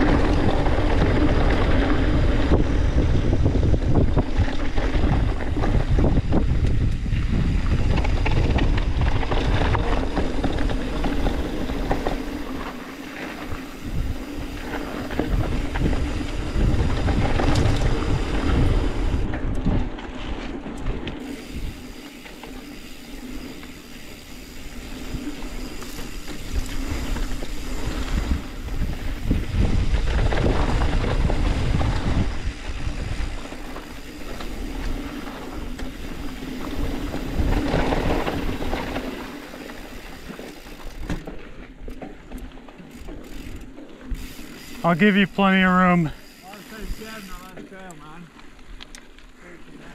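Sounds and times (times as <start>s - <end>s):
bike rattling: 0.0s - 49.9s
bike tyre noise on dirt: 0.0s - 49.9s.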